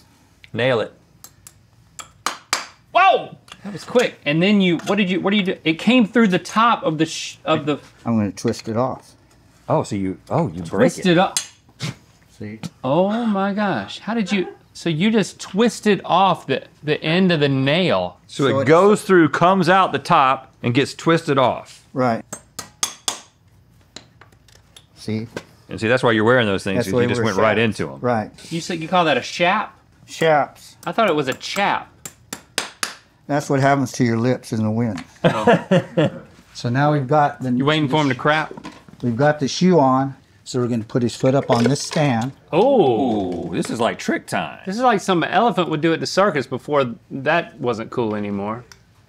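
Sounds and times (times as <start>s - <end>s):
hammer tapping horseshoe nail: 22.3s - 23.3s.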